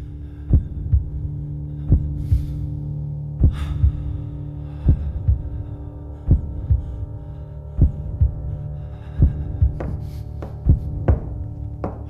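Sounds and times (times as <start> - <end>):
low droning hum: 0.0 - 12.0
heartbeat-like double thump: 3.4 - 4.0, 9.2 - 12.0.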